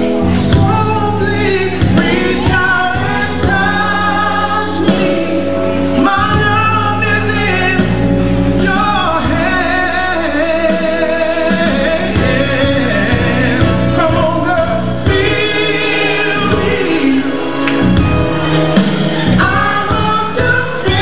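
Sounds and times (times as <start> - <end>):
man singing into microphone: 0.0 - 17.4, 19.3 - 21.0
instrumental accompaniment with bass: 0.0 - 21.0.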